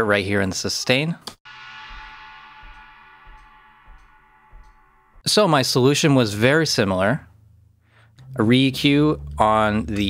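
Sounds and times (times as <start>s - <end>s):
drum sustain ringing out: 1.4s - 7.5s, 8.2s - 10.0s
metronome click ticking: 2.6s - 4.9s.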